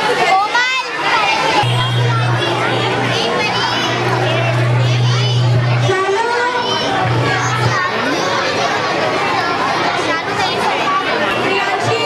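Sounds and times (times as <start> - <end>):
children chattering and calling out: 0.0 - 12.0
steady low hum: 1.6 - 8.3.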